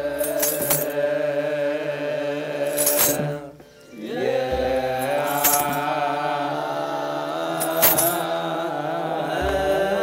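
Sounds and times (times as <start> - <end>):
group chanting in long notes: 0.0 - 10.0
high jingle: 5.0 - 5.9.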